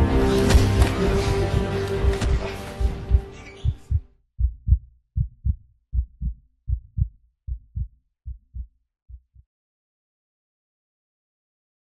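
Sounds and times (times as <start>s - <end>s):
heartbeat double thumps: 1.5s - 9.4s.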